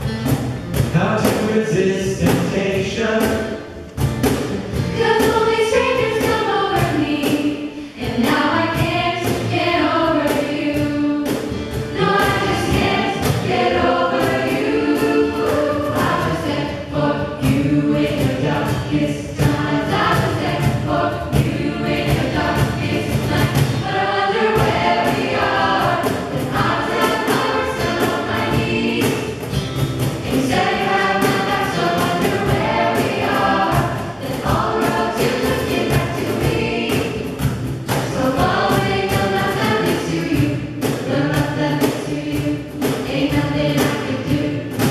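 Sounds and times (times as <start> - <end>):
steady beat: 0.0 - 44.9
jazz choir singing in harmony: 0.9 - 44.9.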